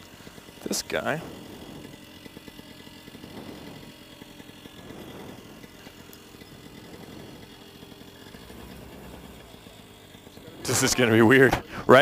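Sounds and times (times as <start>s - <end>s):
two-stroke engine idling: 0.0s - 12.0s.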